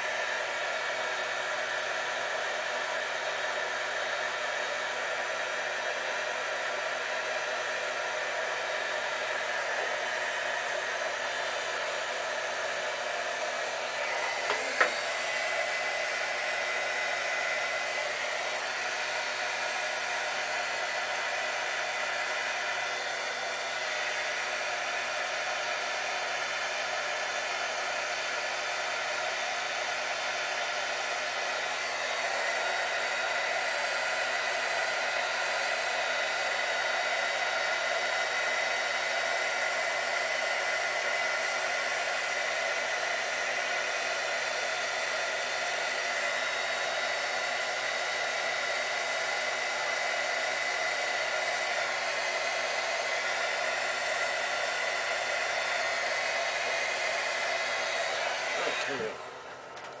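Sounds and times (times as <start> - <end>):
electric tool whining and hissing: 0.0 - 60.0
motor winding down: 57.7 - 60.0.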